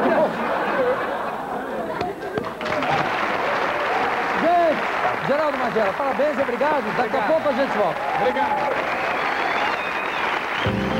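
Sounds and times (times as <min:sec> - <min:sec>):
audience applauding: 0:02.4 - 0:10.9.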